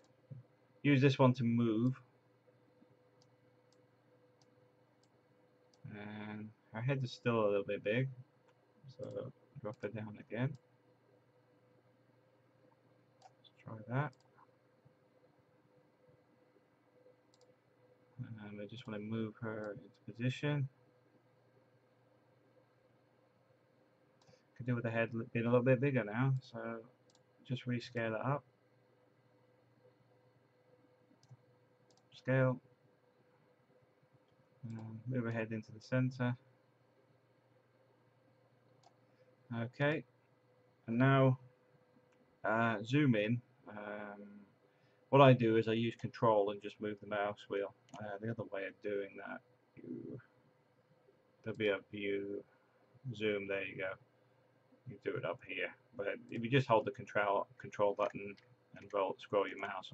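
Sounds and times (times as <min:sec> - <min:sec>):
computer mouse clicks: 0:02.8 - 0:05.9, 0:08.4 - 0:09.9, 0:13.2 - 0:13.5, 0:14.1 - 0:14.5, 0:17.3 - 0:17.6, 0:24.2 - 0:24.5, 0:27.0 - 0:27.3, 0:31.1 - 0:32.2, 0:34.2 - 0:35.0, 0:38.6 - 0:39.3.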